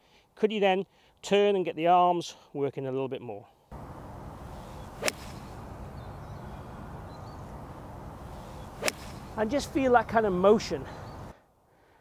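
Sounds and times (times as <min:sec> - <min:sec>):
outdoor background hiss: 0:00.0 - 0:12.0
golf iron striking ball: 0:03.7 - 0:09.5.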